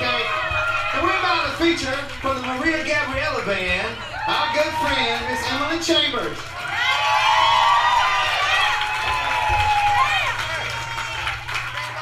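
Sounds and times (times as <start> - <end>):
audience cheering and shouting: 0.0 - 12.0.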